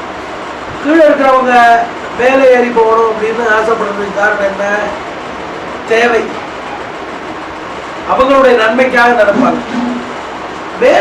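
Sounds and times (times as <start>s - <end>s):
steady background noise: 0.0s - 11.0s.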